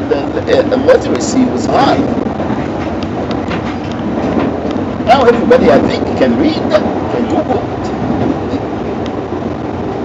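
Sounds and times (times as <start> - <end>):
train carriage running noise: 0.0 - 10.0.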